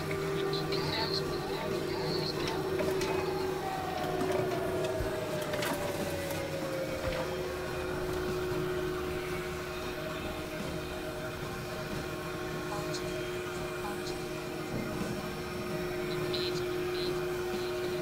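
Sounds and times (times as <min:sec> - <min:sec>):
tone sliding downward: 0:00.0 - 0:10.9
noise bed: 0:00.0 - 0:18.0
steady held electronic tone: 0:00.0 - 0:18.0.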